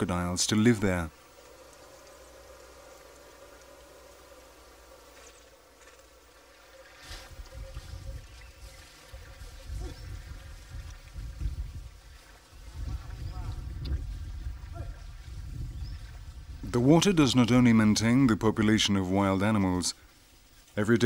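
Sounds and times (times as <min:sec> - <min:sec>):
steady low hum: 0:00.0 - 0:20.6.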